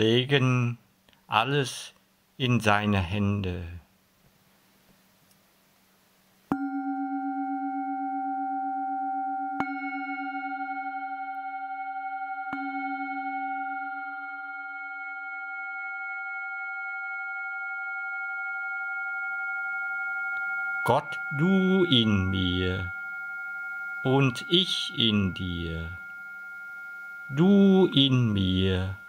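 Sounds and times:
singing bowls ringing: 6.5s - 29.0s.

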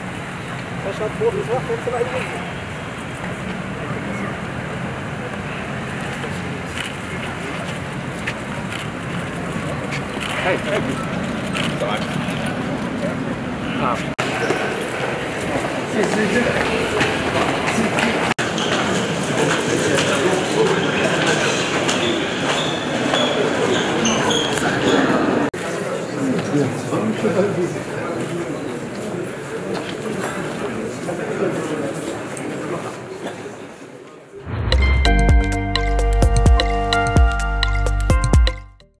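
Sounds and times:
murmur of voices: 0.0s - 34.5s
electronic jingle with synth chords: 34.5s - 38.8s
quick plucked notes: 34.5s - 38.9s.

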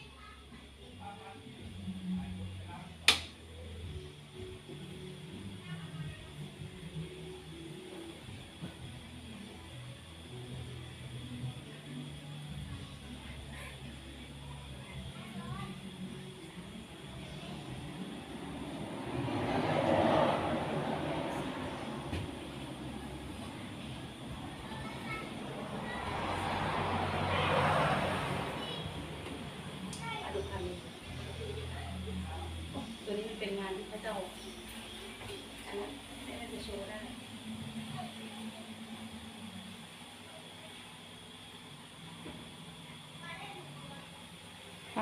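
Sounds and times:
low background hum and hiss: 0.0s - 45.0s
vehicle passing: 17.1s - 38.1s.

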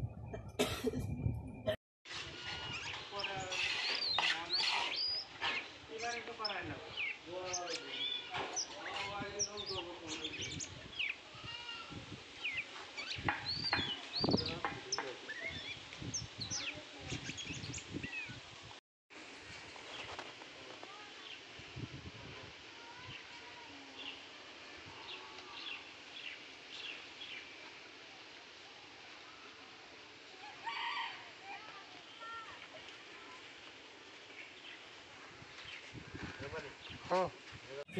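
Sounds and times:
outdoor village ambience: 0.0s - 37.9s
small birds chirping: 2.4s - 18.4s, 22.8s - 29.5s.

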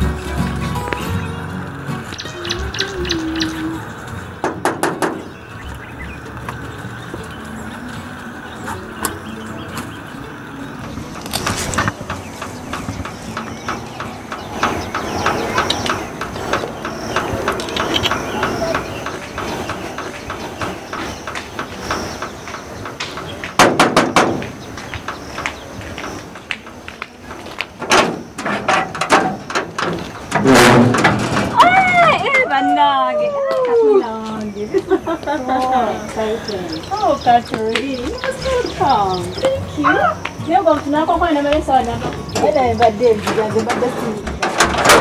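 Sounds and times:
women's excited cries of greeting: 31.5s - 37.2s.

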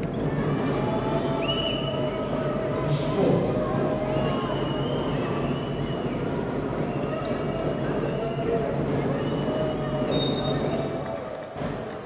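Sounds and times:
voices and din of hall: 0.0s - 12.0s.

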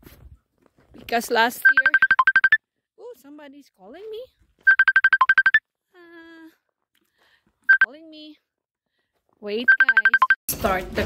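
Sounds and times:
phone ringtone beeps: 1.6s - 2.6s, 4.7s - 5.6s, 7.7s - 7.9s, 9.7s - 10.4s.

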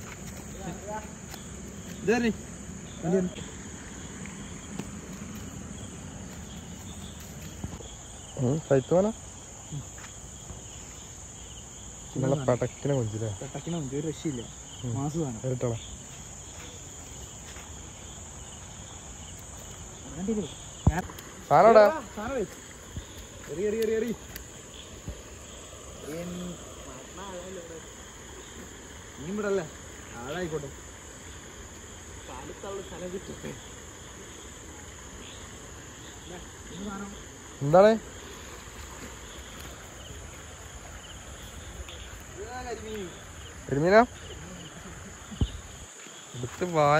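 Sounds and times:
crickets trilling: 0.0s - 46.9s.

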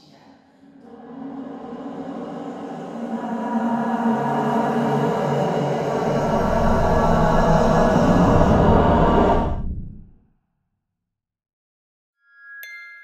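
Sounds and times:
film score with layered held tones: 0.7s - 10.1s.

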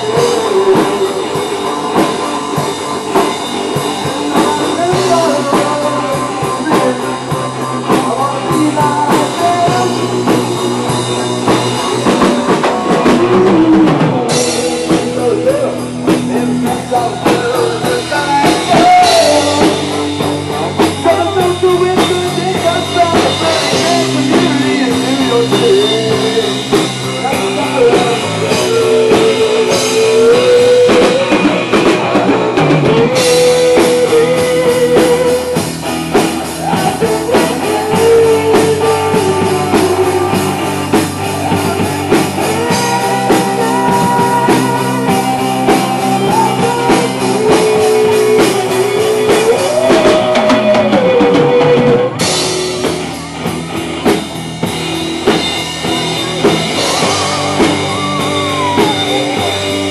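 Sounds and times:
rock band playing live: 0.0s - 59.9s.

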